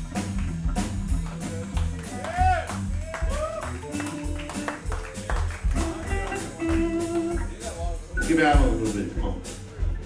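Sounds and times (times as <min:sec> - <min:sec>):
drum and bass beat: 0:00.0 - 0:10.0
electric guitar notes: 0:02.8 - 0:07.7.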